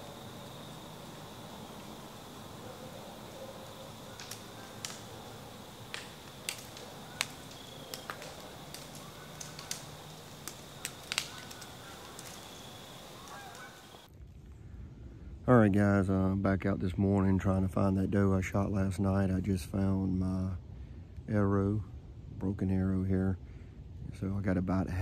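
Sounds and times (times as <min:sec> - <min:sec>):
sharp ticks and snaps: 0:00.0 - 0:14.1.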